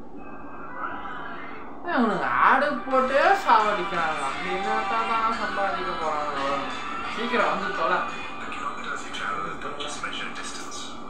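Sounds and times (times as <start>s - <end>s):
background music: 0.9s - 11.0s.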